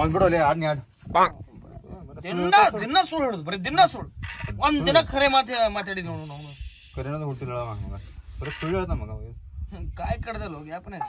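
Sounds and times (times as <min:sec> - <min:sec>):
brief hiss: 0:06.2 - 0:07.8.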